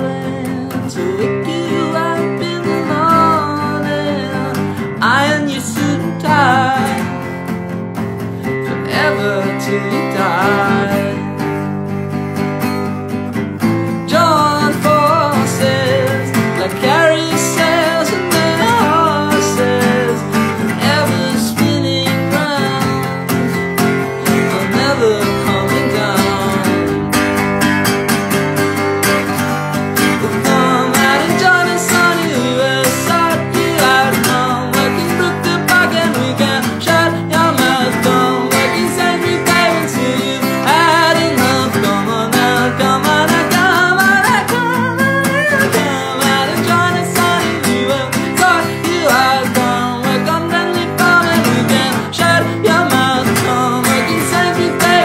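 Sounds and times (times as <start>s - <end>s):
man singing: 0.0s - 7.4s, 8.4s - 11.8s, 13.9s - 27.4s, 30.0s - 55.0s
strummed acoustic guitar: 0.0s - 55.0s.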